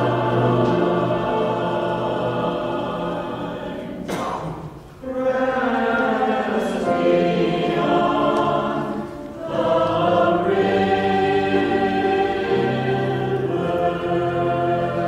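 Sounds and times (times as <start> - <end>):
mixed choir singing: 0.0 - 15.0.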